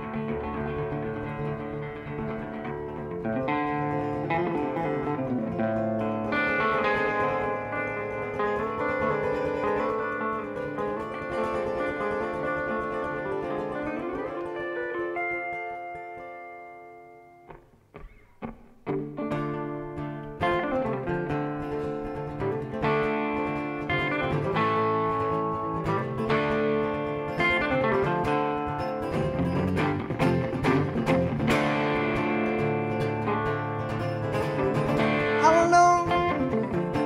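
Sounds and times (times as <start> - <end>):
two guitars playing: 0.0 - 37.0.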